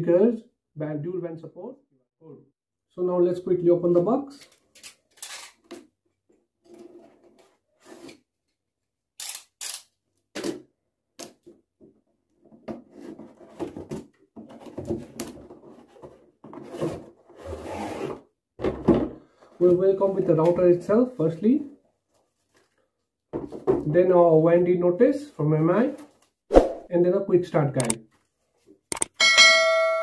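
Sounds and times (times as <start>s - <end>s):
cardboard scraping: 12.9s - 18.2s.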